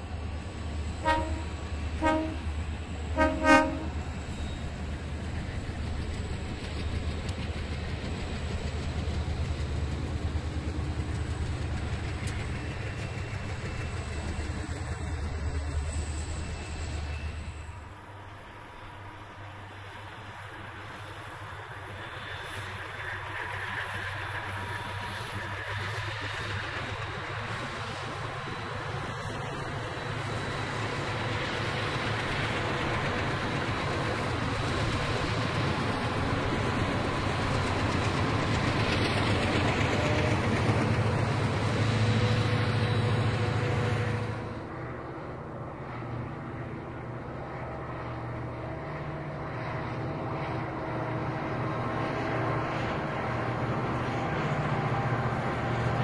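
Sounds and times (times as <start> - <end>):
train wheels rolling: 0.0 - 17.9, 21.0 - 44.7.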